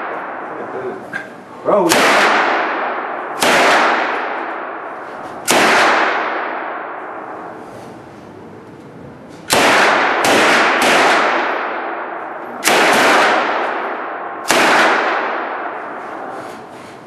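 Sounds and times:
rifle shots echoing indoors: 0.0s - 1.0s, 1.7s - 8.3s, 9.4s - 16.9s.

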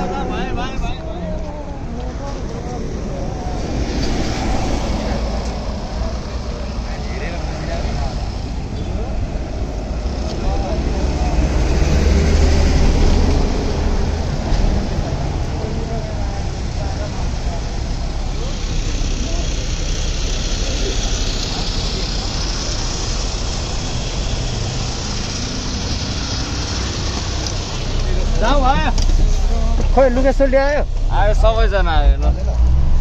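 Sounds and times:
bus engines rumbling: 0.0s - 33.0s
road traffic: 0.0s - 33.0s.

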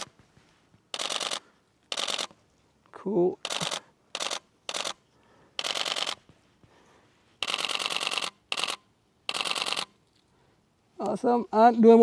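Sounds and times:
camera shutter rapid clicking: 0.9s - 2.4s, 3.4s - 5.0s, 5.6s - 6.2s, 7.4s - 10.0s.

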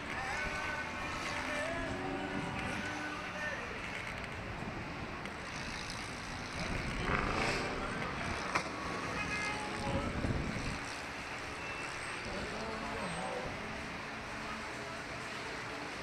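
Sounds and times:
wind rushing over microphone: 9.7s - 11.0s.

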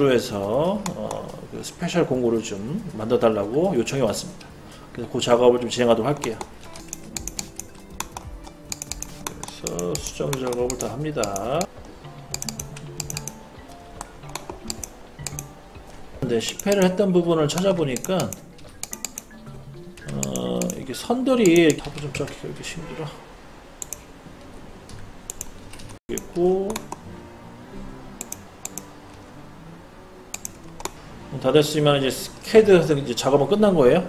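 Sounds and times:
quiet background music: 0.0s - 34.0s
keyboard and mouse clicks: 0.7s - 1.4s, 6.1s - 22.4s, 23.8s - 24.1s, 24.8s - 27.0s, 28.2s - 29.2s, 30.3s - 31.0s.

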